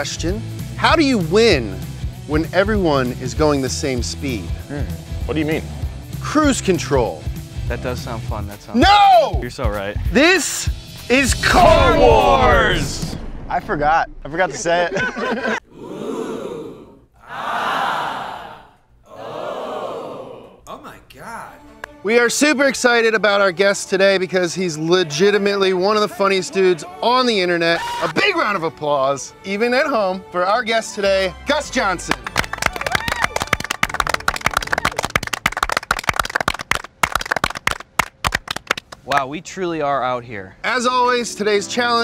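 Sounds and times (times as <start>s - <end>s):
group of people clapping: 32.1s - 39.2s.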